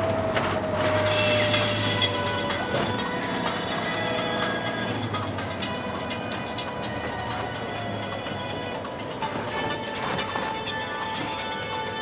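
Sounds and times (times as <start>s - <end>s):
bus engine drone: 0.0s - 12.0s.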